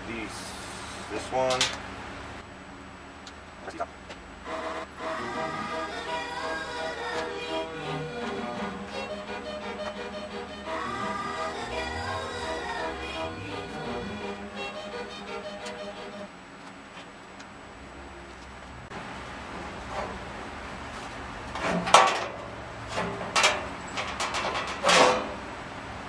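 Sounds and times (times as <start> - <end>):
background music: 4.5 - 16.3
metal clunks and scrapes: 19.5 - 20.3, 21.0 - 25.4.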